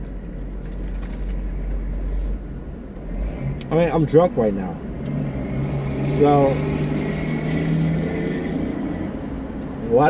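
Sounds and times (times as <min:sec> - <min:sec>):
low car cabin hum: 0:00.0 - 0:05.5.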